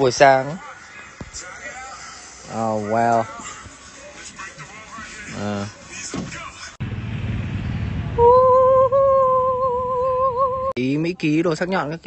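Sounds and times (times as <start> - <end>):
person humming high note: 8.2 - 10.7.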